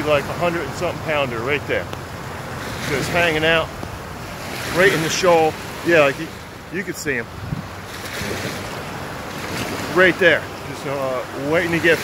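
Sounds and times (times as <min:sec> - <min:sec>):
ocean surf breaking: 0:00.0 - 0:12.0
wind on microphone: 0:02.3 - 0:10.0.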